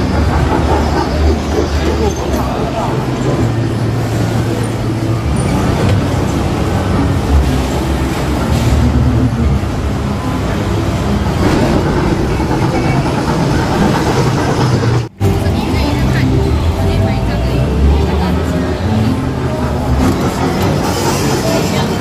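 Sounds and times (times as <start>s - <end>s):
carnival ride mechanical rumble: 0.0s - 22.0s.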